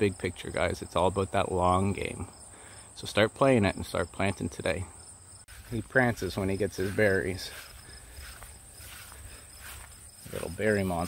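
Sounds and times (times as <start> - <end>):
insects trilling: 0.0 - 11.0
footsteps through long grass: 5.5 - 11.0.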